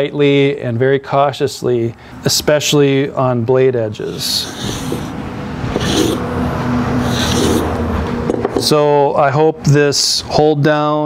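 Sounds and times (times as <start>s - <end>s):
hand plane scraping wood: 4.0s - 6.2s, 6.9s - 7.8s.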